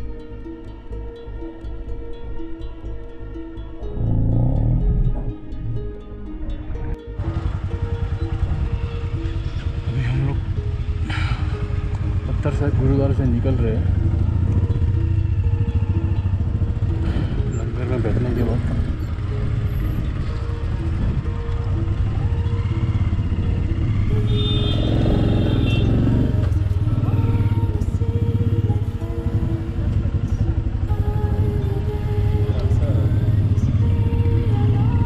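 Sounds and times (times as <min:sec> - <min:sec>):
voices: 0:08.4 - 0:23.4, 0:24.1 - 0:35.0.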